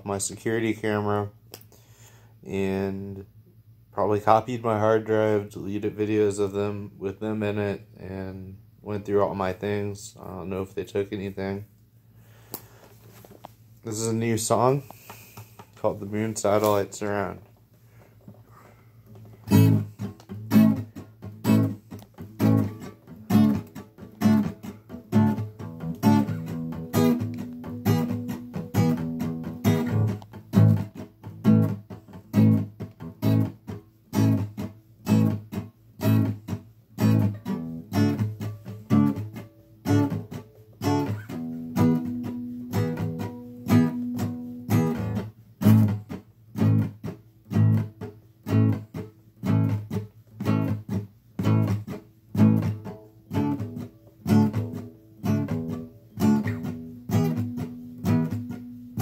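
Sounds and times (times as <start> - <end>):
guitar strumming: 19.0 - 59.0.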